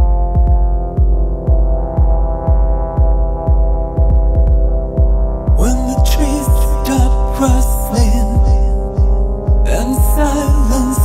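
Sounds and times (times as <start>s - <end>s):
deep kick drum: 0.0s - 11.0s
sustained synth chord: 0.0s - 11.0s.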